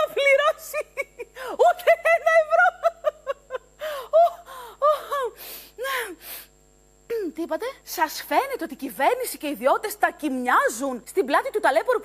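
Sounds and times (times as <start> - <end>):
woman gasping: 1.3 - 1.6, 3.8 - 6.5.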